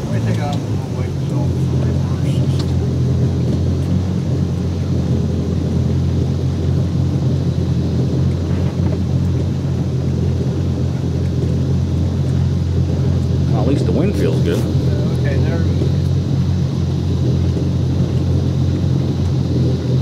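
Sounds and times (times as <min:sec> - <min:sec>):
boat engines idling: 0:00.0 - 0:20.0.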